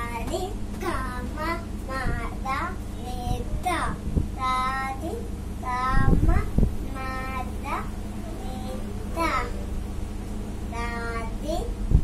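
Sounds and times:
toddler sing-song vocalizing: 0.0s - 9.7s.

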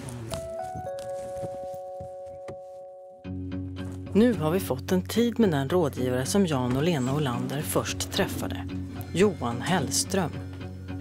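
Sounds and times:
bell-like ringing chord: 0.4s - 3.8s.

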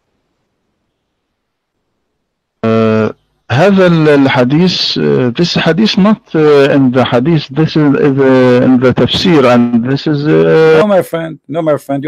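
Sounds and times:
man holding a steady vowel: 2.6s - 11.5s.

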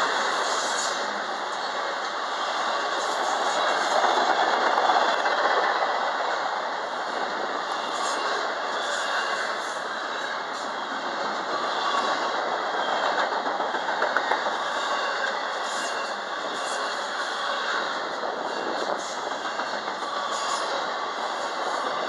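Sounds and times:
steel wheels on rail: 0.0s - 22.0s.

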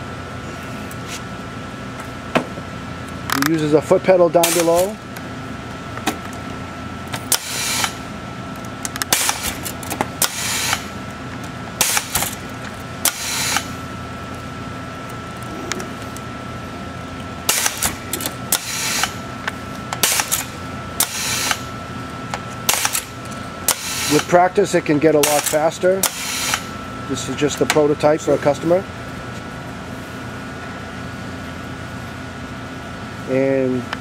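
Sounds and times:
machine hum with high whine: 0.0s - 34.0s
short bursts of machine noise: 7.3s - 8.0s, 9.1s - 11.0s, 11.8s - 12.4s, 13.0s - 13.8s, 17.5s - 19.2s, 20.0s - 21.7s, 23.7s - 24.4s, 25.2s - 26.8s.

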